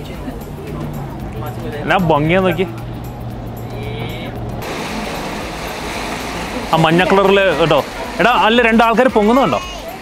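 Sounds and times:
low motor hum: 0:00.0 - 0:08.5
even rushing noise: 0:00.0 - 0:09.8
background music: 0:00.0 - 0:10.0.

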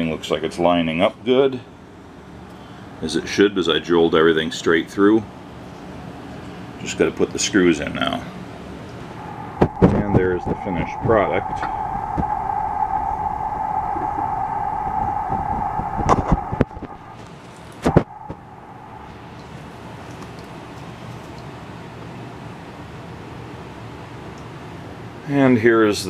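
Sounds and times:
steady mechanical hum: 0:00.0 - 0:26.0
low room noise: 0:02.7 - 0:25.2.

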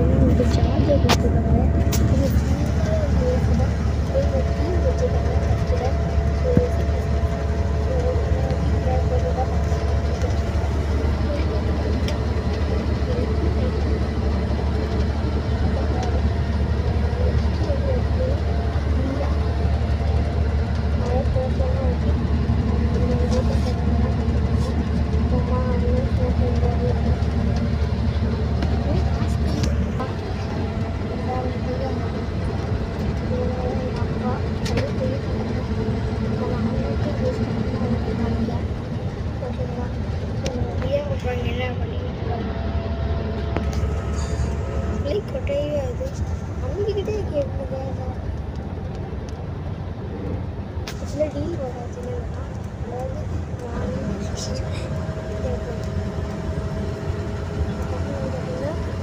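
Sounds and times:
bus rumbling on road: 0:00.0 - 0:59.0
voices talking: 0:00.0 - 0:59.0.

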